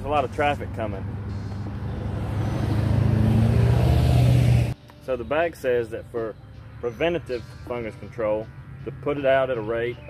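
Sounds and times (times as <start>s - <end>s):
vehicle engine drone passing: 0.0s - 4.8s.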